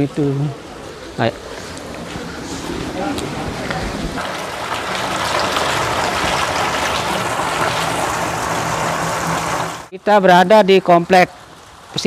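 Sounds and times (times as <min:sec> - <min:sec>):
water pouring into pool: 0:04.2 - 0:09.9.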